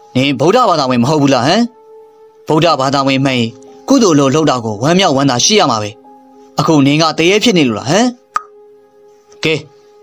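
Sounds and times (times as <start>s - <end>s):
faint background music tones: 0.0s - 10.0s.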